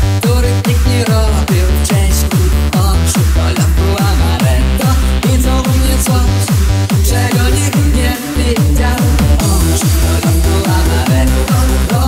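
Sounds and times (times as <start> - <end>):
heavy kick drum: 0.0 - 12.0
synth chords: 0.0 - 12.0.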